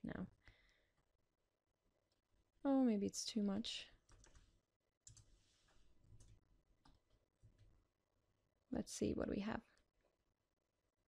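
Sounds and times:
computer mouse and keyboard clicks: 0:04.0 - 0:05.4.

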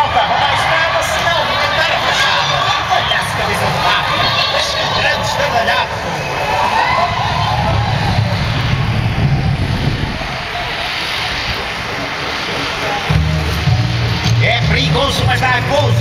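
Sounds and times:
soundtrack over loudspeakers: 0:00.0 - 0:10.2, 0:10.9 - 0:16.0
large outdoor crowd noise: 0:00.0 - 0:16.0.

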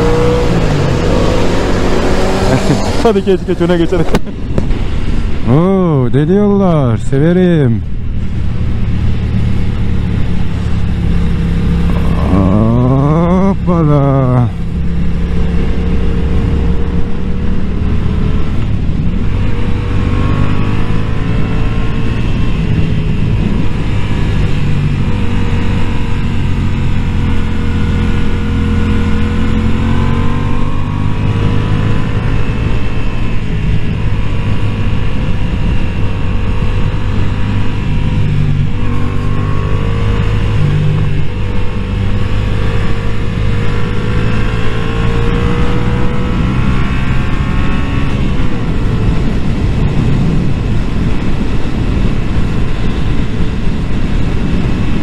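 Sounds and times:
wind rush on microphone: 0:00.0 - 0:55.0
motorcycle engine running: 0:07.2 - 0:55.0.

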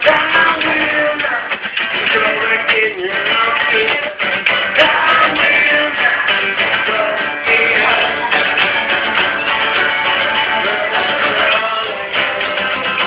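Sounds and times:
man singing: 0:00.0 - 0:09.5, 0:10.2 - 0:13.0
strummed guitar: 0:00.0 - 0:13.0.

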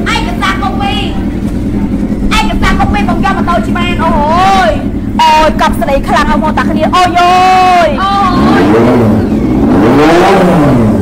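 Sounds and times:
motorcycle engine idling: 0:00.0 - 0:09.7
voices talking: 0:00.0 - 0:10.1.

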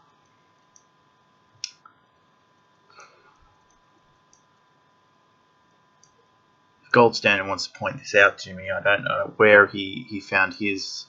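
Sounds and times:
faint electronic hum: 0:00.0 - 0:11.0
faint clicks: 0:00.2 - 0:00.9, 0:02.9 - 0:04.7, 0:06.0 - 0:06.2.

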